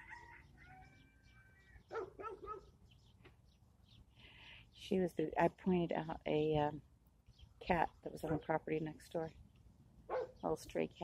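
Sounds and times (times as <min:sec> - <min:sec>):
dog barking faintly: 0:10.1 - 0:10.4.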